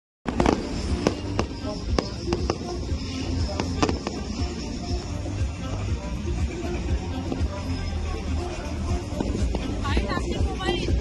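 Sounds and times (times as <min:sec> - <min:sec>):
fireworks bangs: 0:00.3 - 0:05.0
music: 0:00.3 - 0:11.0.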